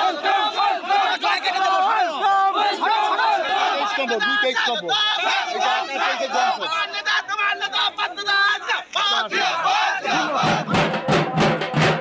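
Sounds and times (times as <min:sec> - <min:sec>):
crowd shouting: 0:00.0 - 0:12.0
barrel drums beaten rapidly: 0:10.1 - 0:12.0.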